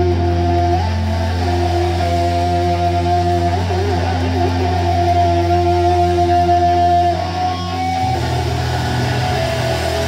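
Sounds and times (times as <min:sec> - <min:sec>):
guitar and keyboard notes: 0:00.0 - 0:10.0
low bass drone: 0:00.0 - 0:10.0.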